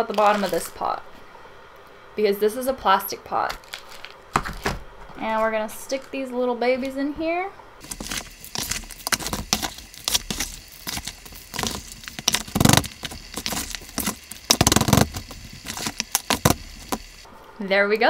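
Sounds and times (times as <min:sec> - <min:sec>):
plastic scoop scraping potting mix: 0:00.0 - 0:00.9, 0:07.8 - 0:17.3
soil pouring into plastic pot: 0:07.8 - 0:17.3.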